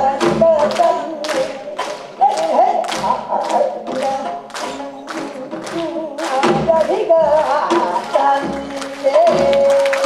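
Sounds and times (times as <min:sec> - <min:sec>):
women singing folk song: 0:00.0 - 0:10.0
sharp hand claps: 0:00.6 - 0:10.0.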